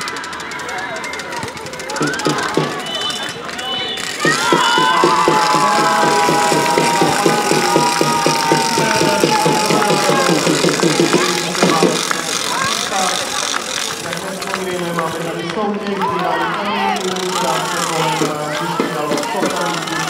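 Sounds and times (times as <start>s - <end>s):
scattered voices: 0.0s - 20.0s
spectators clapping in rhythm: 1.7s - 20.0s.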